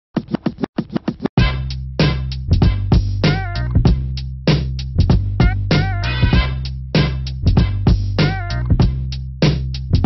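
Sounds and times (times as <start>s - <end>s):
turntable scratches: 0.2s - 1.4s, 3.2s - 3.8s, 5.4s - 7.4s, 8.0s - 8.9s.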